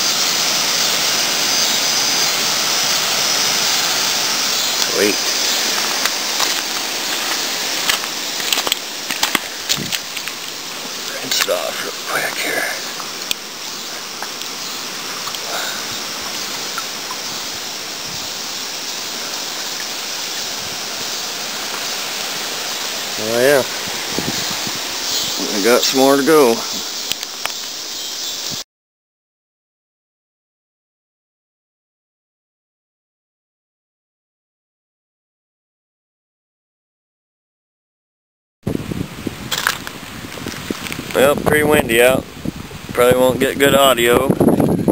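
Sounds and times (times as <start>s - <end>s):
flowing creek water: 0.0s - 28.6s
sharp crackles: 0.0s - 28.6s, 39.4s - 42.1s
wind buffeting microphone: 2.6s - 12.6s, 14.9s - 18.6s, 20.4s - 27.0s, 38.7s - 44.9s.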